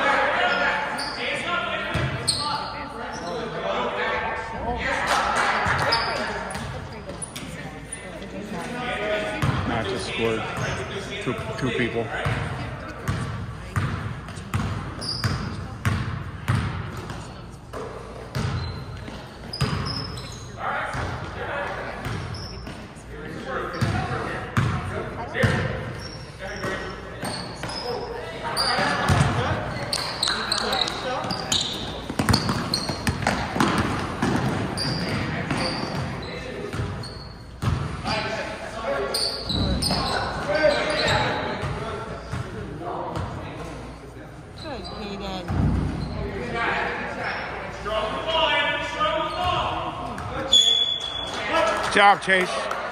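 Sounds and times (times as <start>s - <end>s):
sneakers squeaking: 0.0s - 3.7s, 5.6s - 51.6s
basketballs bouncing on gym floor: 1.9s - 2.4s, 5.6s - 7.1s, 9.3s - 10.8s, 11.4s - 20.1s, 20.8s - 22.9s, 23.7s - 25.8s, 28.7s - 38.3s, 45.2s - 46.2s.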